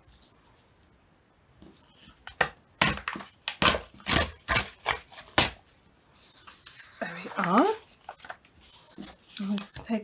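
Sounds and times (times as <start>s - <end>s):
faint paper handling: 4.8s - 10.0s.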